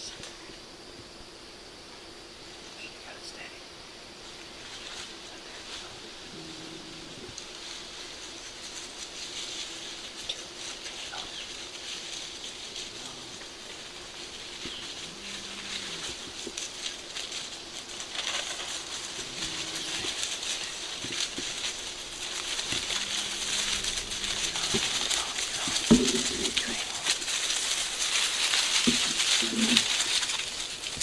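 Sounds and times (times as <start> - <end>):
animal scurrying through dry leaves: 4.2 - 31.0.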